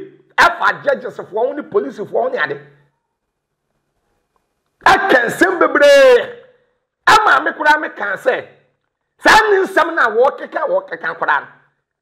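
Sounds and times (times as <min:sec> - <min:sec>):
man's voice: 0:00.0 - 0:02.8, 0:04.8 - 0:08.6, 0:09.2 - 0:11.6.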